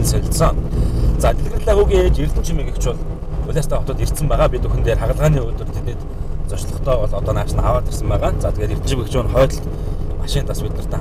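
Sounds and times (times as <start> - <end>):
man talking: 0.0 - 11.0
vehicle rumble inside cabin: 0.0 - 11.0.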